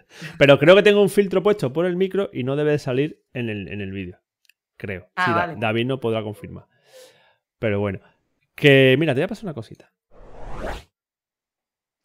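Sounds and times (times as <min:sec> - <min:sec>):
whoosh transition effect: 0:10.1 - 0:10.8.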